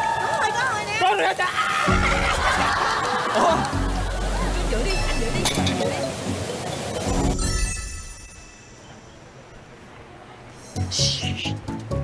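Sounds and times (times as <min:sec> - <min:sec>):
man and woman laughing: 0:01.4 - 0:04.6
background music with bass: 0:01.9 - 0:05.8.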